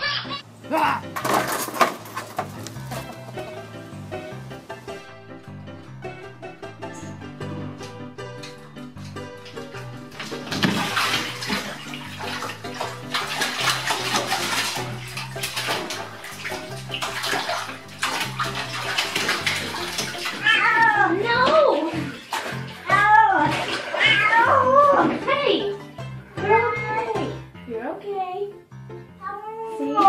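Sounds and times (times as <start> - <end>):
water sloshing in bathtub: 7.7 - 27.4
cat meowing: 20.3 - 21.2, 23.9 - 24.9.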